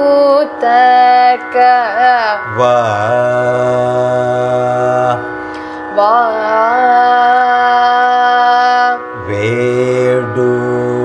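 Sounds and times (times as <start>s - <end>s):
woman singing ornamented phrase: 0.0s - 5.2s, 5.9s - 9.9s
man singing long held note: 0.0s - 11.0s
steady drone: 0.0s - 11.0s.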